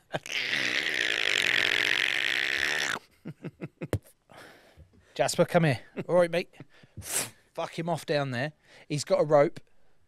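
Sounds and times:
man making raspy hissing sound: 0.2 - 3.0.

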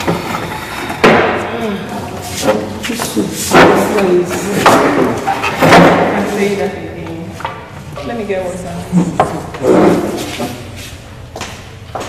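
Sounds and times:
chair scraping on floor: 8.6 - 11.0.

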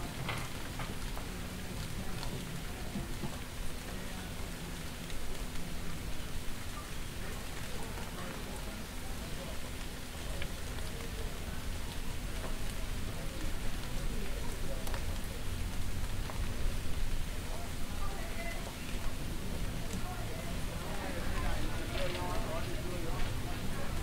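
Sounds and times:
rain falling on a street: 0.0 - 24.0.

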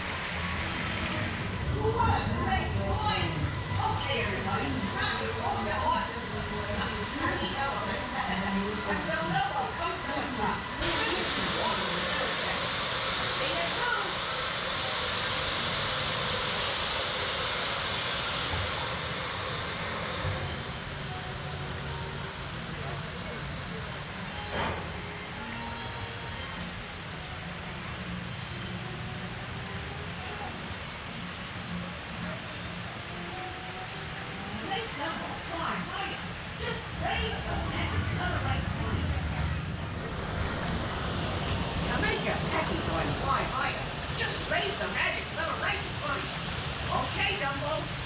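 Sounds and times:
steady hiss: 0.0 - 2.1, 3.1 - 48.0
crowd voices: 0.0 - 48.0
outdoor background noise: 0.0 - 48.0.

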